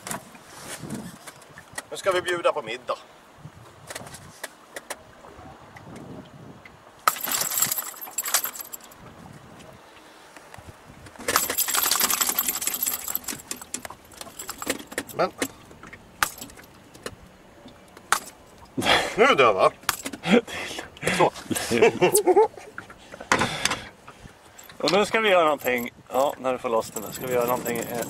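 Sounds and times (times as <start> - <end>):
metal hook jangling: 7.1 - 9.0, 11.3 - 15.6, 16.2 - 16.7, 24.6 - 28.0.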